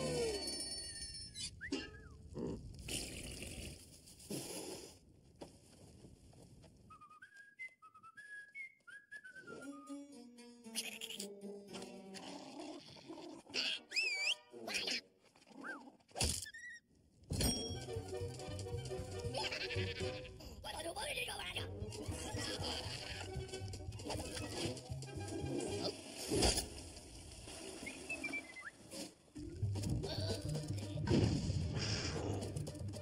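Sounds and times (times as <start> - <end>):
rising and falling squeak: 6.9 - 10.0, 13.9 - 14.5, 16.4 - 16.8
cartoon score music: 9.5 - 12.1, 17.5 - 20.5, 21.4 - 26.0, 29.4 - 33.0
cartoon grunting sounds: 30.0 - 31.1.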